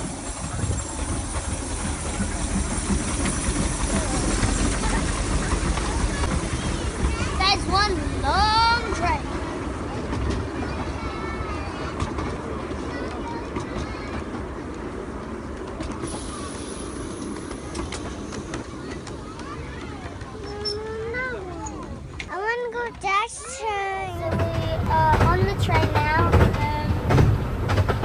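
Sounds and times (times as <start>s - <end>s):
railway carriages rumbling past: 0.0s - 28.0s
wheels clicking on track: 0.0s - 28.0s.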